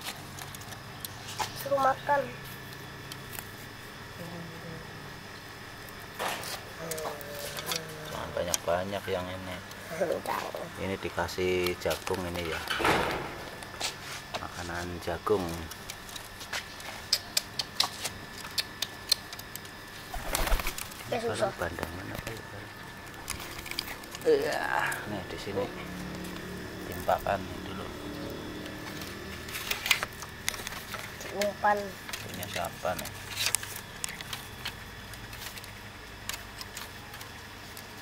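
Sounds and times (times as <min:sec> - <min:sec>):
pigeons pecking corn: 0:00.0 - 0:04.4, 0:05.4 - 0:38.0
pigeons scuffling: 0:20.0 - 0:21.0.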